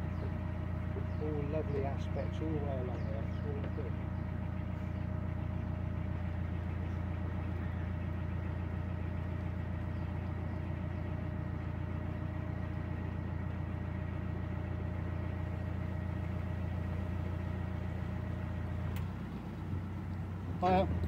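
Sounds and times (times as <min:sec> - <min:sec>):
diesel boat engine running: 0:00.0 - 0:21.0.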